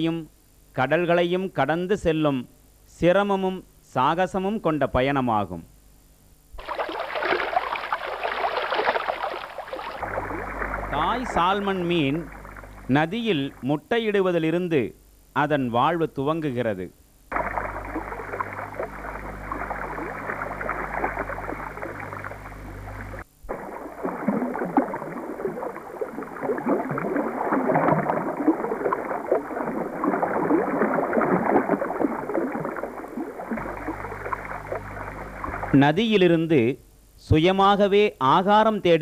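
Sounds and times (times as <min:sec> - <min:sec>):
low steady hum: 0:05.2 - 0:37.4
bubbling river water: 0:06.6 - 0:13.7, 0:17.3 - 0:35.8.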